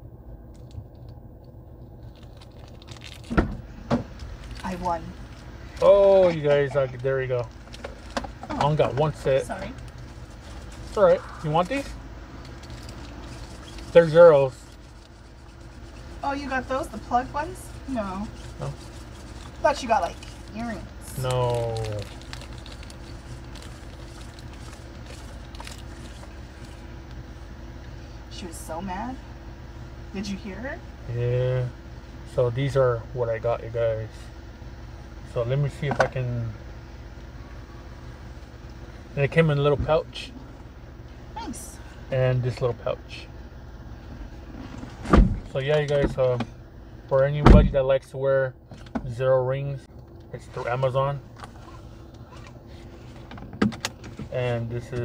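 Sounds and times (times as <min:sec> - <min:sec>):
car engine idling hum: 0:00.0 - 0:55.0
sharp plastic crackles: 0:00.5 - 0:09.1, 0:09.7 - 0:16.2, 0:18.2 - 0:27.2
plastic bag crinkling: 0:01.9 - 0:03.4, 0:04.1 - 0:08.2, 0:09.8 - 0:11.8, 0:12.4 - 0:16.2, 0:17.8 - 0:26.9
small items clicking and rustling: 0:12.4 - 0:15.8, 0:18.2 - 0:27.2.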